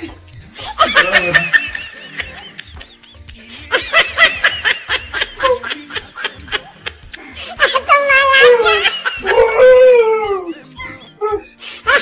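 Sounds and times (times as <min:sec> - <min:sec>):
howl-like vocal wail: 0:07.9 - 0:11.5.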